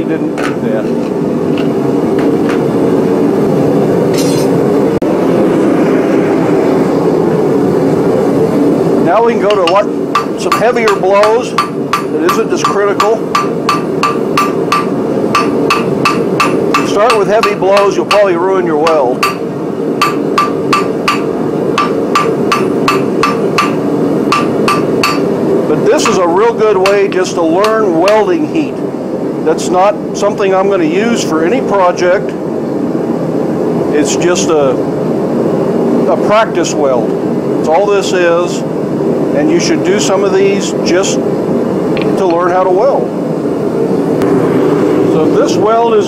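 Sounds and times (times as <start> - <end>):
low hum: 0.0 - 30.2, 41.2 - 46.0
hammer striking steel on anvil: 4.1 - 4.6, 9.5 - 25.3, 26.0 - 28.3.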